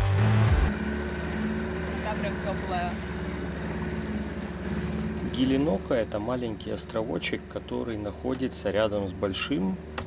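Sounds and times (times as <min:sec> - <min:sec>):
music: 0:00.0 - 0:00.7
outboard motor running: 0:00.0 - 0:10.0.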